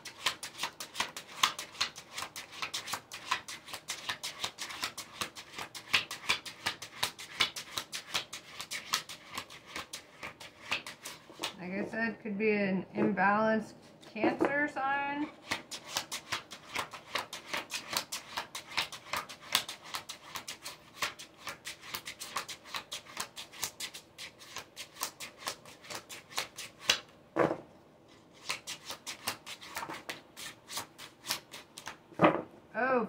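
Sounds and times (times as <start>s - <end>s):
cards being shuffled: 0.0s - 11.8s, 15.3s - 27.1s, 28.3s - 32.0s.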